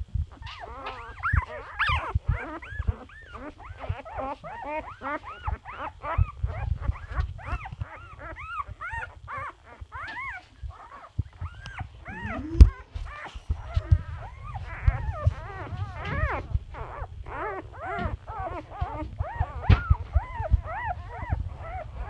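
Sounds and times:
puppies whimpering and squealing: 0.3 - 22.0.

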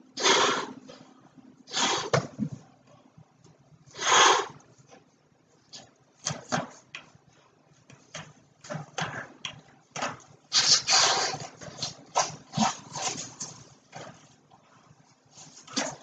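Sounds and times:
breaths blowing up balloon: 0.1 - 0.9, 1.7 - 2.6, 3.9 - 4.6, 10.5 - 13.2
latex rubbing: 10.5 - 16.0.

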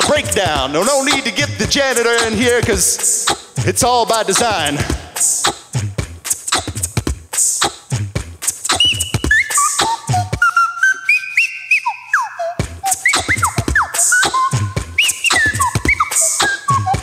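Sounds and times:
beatbox beat: 0.0 - 17.0
layered whistled tones and chirps: 8.7 - 17.0.

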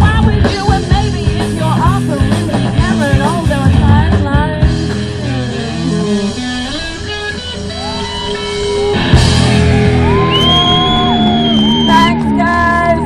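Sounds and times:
bass: 0.0 - 13.0
drums: 0.0 - 13.0
electric guitar: 0.0 - 13.0.

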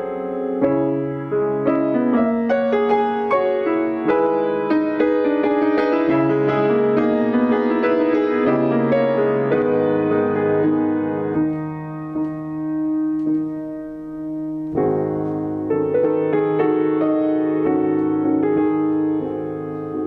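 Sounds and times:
grand piano playing: 0.0 - 20.0.

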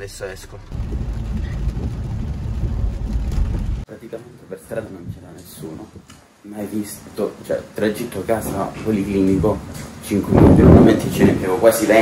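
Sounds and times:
car driving on wet street: 0.2 - 3.9.

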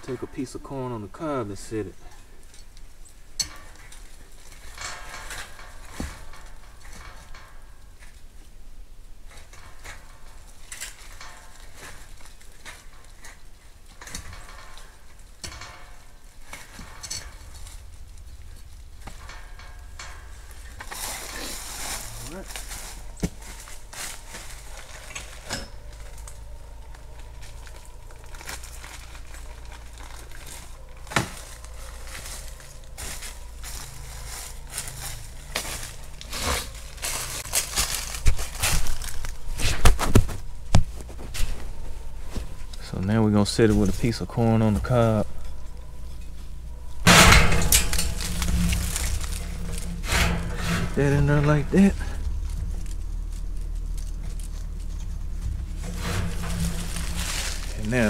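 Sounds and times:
dry leaves rustling: 0.0 - 58.0.

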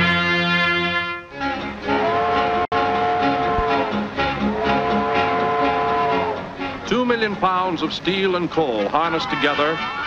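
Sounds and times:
orchestral film music: 0.0 - 10.0.

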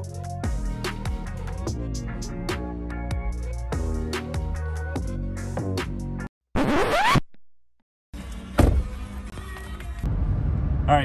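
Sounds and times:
rising scratch sound effect: 6.6 - 7.4.

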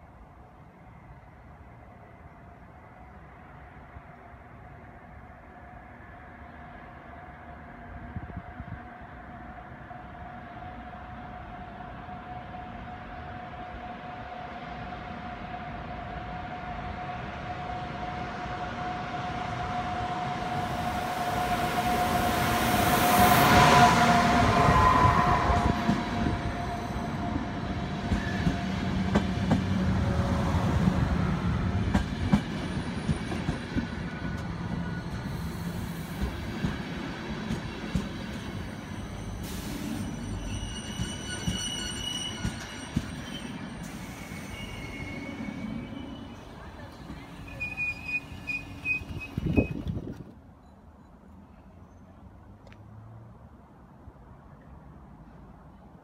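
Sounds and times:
electric locomotive passing: 0.0 - 52.1
high brake squeal: 38.4 - 49.9.

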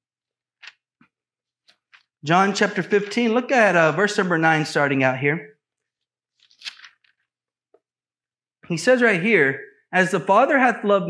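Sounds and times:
thin pages being turned: 2.7 - 3.4, 6.3 - 7.3.

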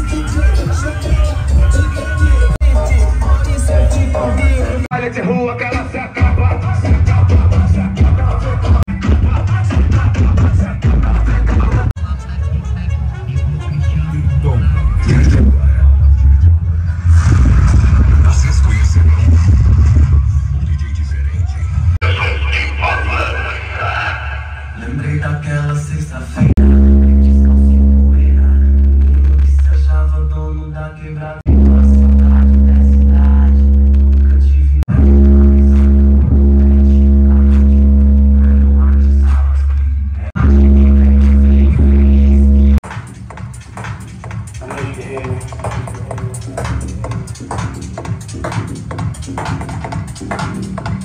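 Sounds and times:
loud music with deep bass: 0.0 - 51.0.

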